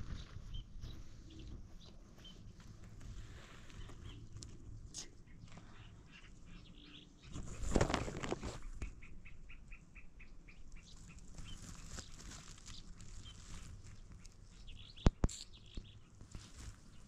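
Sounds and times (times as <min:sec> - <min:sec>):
small bird chirping: 0:00.0 - 0:03.0, 0:03.7 - 0:17.0.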